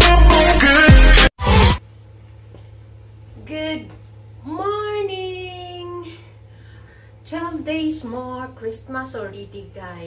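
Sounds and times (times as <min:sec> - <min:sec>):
steady low hum: 0:01.8 - 0:10.0.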